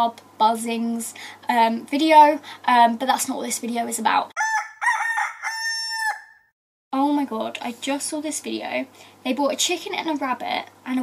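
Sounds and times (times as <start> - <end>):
rooster crowing: 4.4 - 6.5.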